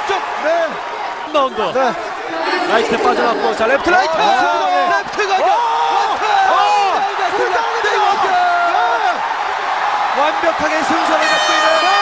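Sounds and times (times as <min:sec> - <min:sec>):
crowd noise: 0:00.0 - 0:12.0
excited shouting voices: 0:02.1 - 0:09.2.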